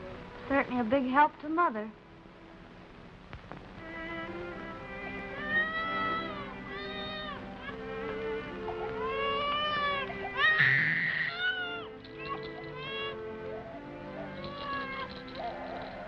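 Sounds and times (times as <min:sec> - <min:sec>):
background music: 0:00.0 - 0:16.0
baby crying: 0:05.2 - 0:16.0.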